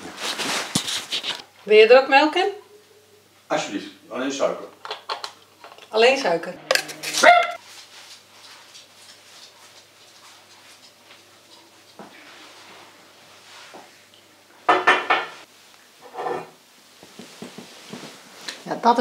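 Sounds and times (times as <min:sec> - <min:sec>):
coffee cups and crockery clinking: 0:04.8 - 0:07.6, 0:14.7 - 0:15.4
small dog barking: 0:06.9 - 0:07.6.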